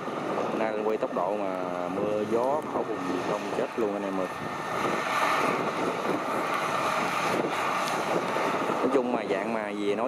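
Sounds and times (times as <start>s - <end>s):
combine harvester running: 0.0s - 10.0s
wind buffeting microphone: 0.0s - 10.0s.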